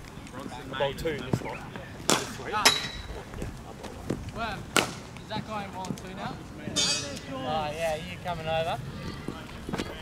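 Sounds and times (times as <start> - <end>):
high ringing: 6.8 - 7.2.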